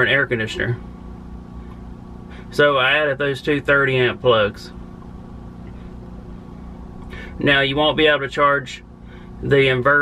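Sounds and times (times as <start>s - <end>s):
generator humming: 0.0s - 10.0s.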